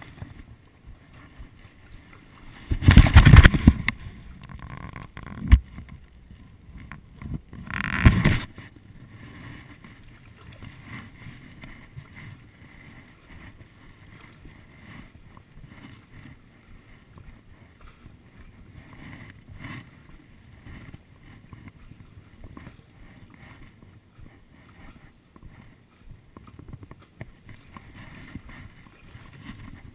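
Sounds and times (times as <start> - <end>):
paddle strokes in water: 0.0 - 29.9
water sloshing: 0.0 - 29.9.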